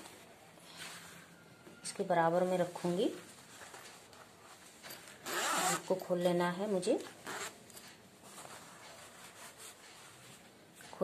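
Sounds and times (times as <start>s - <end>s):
soft scratchy strokes: 8.2s - 10.5s.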